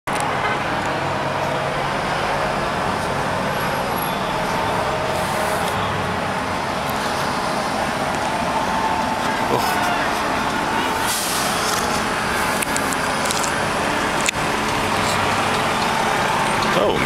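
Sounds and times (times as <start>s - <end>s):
road traffic noise: 0.0s - 17.0s.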